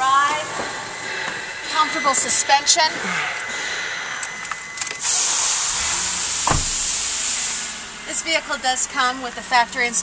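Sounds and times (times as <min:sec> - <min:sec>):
dull thump: 0:06.4 - 0:06.9.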